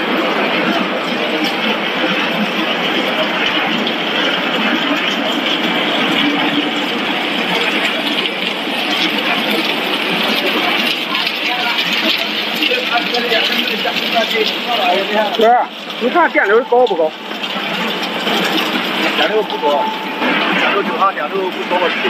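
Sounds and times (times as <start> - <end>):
extrusion machinery running: 0.0 - 22.0.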